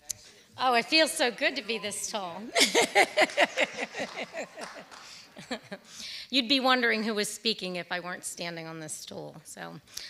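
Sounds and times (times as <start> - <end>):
woman laughing: 2.4 - 6.0.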